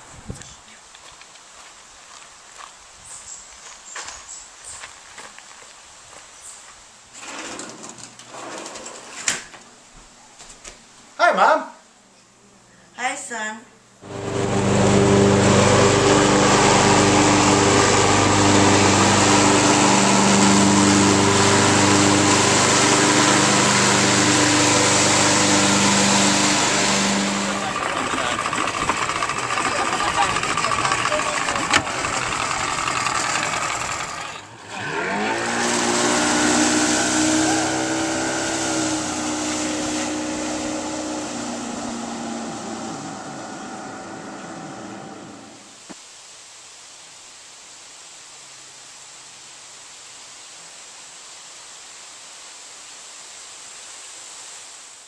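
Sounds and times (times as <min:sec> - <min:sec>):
engine revving: 0:14.0 - 0:45.7
engine running with hum: 0:14.0 - 0:45.7.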